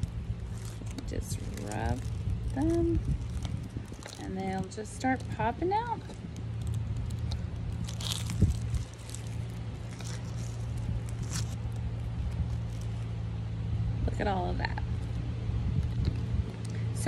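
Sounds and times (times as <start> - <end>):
low drone: 0.0 - 17.0.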